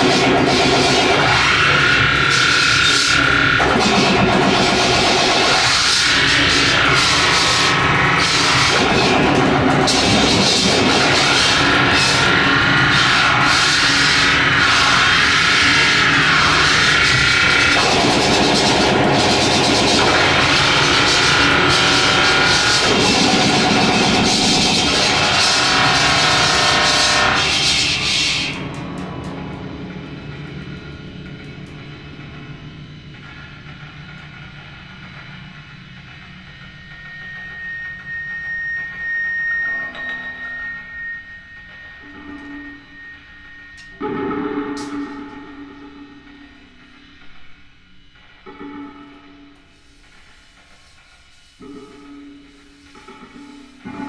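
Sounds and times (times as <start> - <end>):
harsh electronic noise music: 0.0 - 54.0
thin steady high tone: 36.4 - 47.0.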